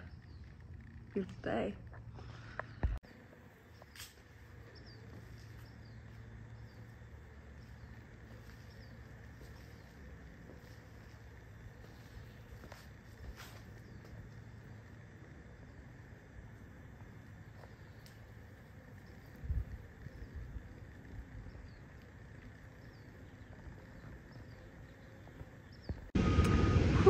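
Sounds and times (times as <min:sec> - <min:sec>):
small birds chirping: 0:00.0 - 0:26.2
low steady rumble: 0:25.9 - 0:27.0
loud steady noise: 0:26.2 - 0:27.0.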